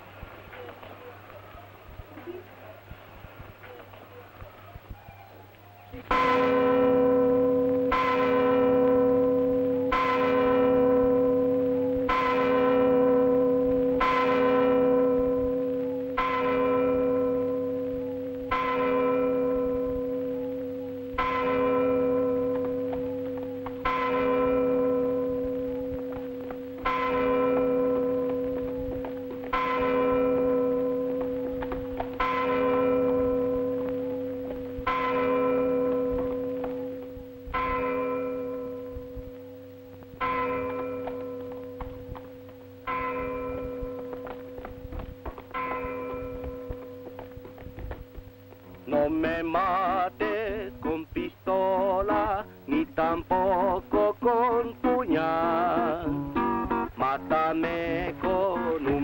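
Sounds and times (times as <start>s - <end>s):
church bell tolling: 5.9s - 59.0s.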